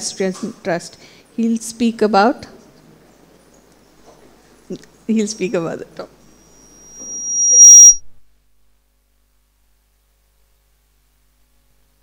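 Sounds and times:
microphone feedback whistle: 0:06.3 - 0:08.2.

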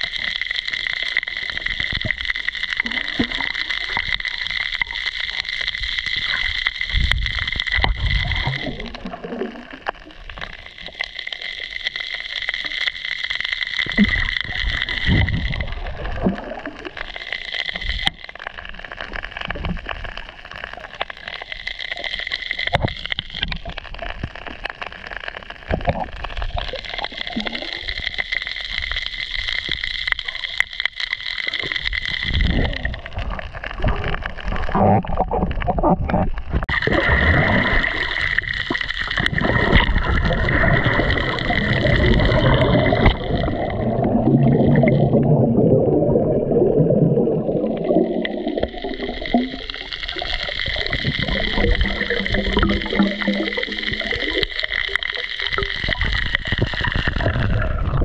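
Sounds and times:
muffled underwater gurgling: 0:00.0 - 0:58.0.

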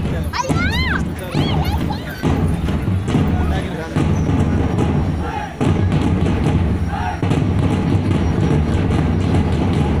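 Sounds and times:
large drums pounding: 0:00.0 - 0:10.0.

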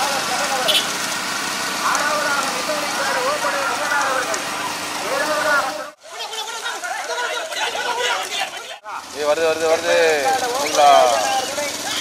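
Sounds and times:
vehicle engine running: 0:00.0 - 0:06.0
men calling and shouting: 0:00.0 - 0:12.0
road noise: 0:00.0 - 0:12.0.

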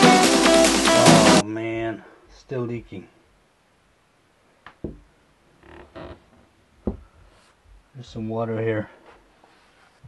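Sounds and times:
dull knock: 0:04.8 - 0:05.1, 0:06.8 - 0:07.1.

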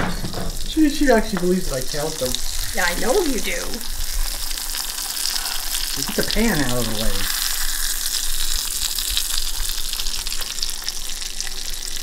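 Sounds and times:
meat sizzling in a frying pan: 0:00.3 - 0:12.0.

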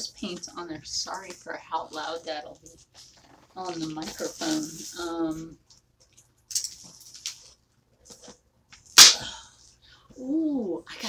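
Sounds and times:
loud sharp plastic snap: 0:09.0 - 0:09.2.

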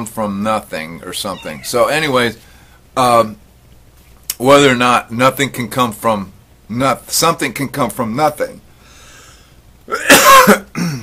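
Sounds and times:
man coughing: 0:09.9 - 0:11.0.

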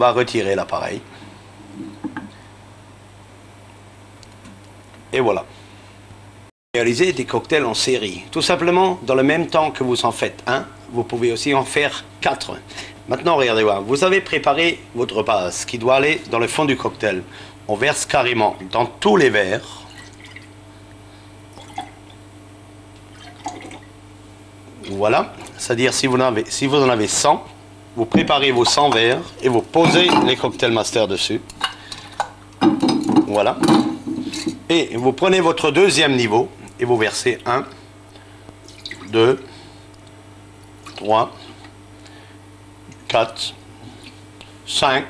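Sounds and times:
steady low hum: 0:00.0 - 0:45.0
liquid pouring into glasses: 0:19.8 - 0:20.5, 0:21.5 - 0:22.1, 0:23.1 - 0:23.9, 0:38.6 - 0:39.1.

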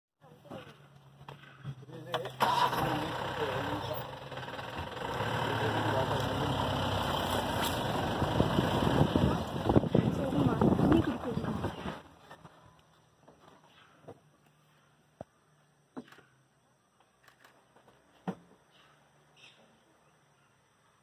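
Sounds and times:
vehicle engine running: 0:02.4 - 0:12.2
people talking quietly: 0:05.0 - 0:07.9.

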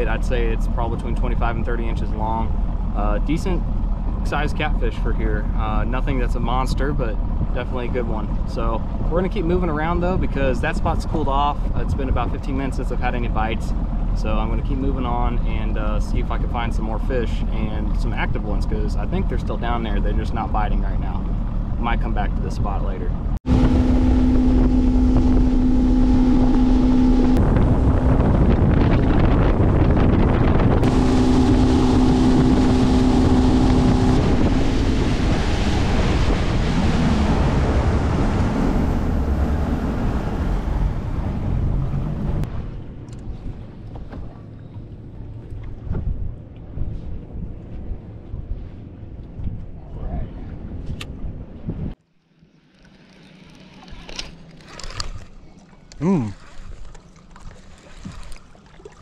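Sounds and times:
wind buffeting microphone: 0:00.0 - 0:52.0
outboard motor running: 0:00.0 - 0:59.0
water rushing past hull: 0:00.0 - 0:59.0.

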